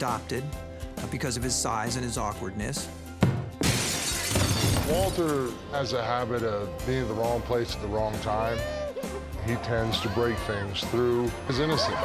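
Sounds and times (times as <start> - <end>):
background music: 0.0 - 12.0
something shattering: 3.6 - 5.5.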